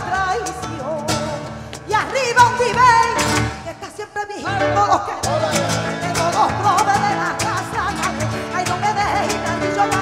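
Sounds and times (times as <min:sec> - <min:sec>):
flamenco guitar: 0:00.0 - 0:10.0
woman singing: 0:00.0 - 0:10.0.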